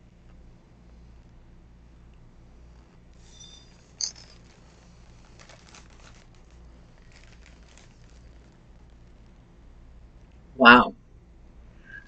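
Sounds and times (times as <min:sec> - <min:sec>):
plastic snack bag crinkling: 0:03.2 - 0:09.4.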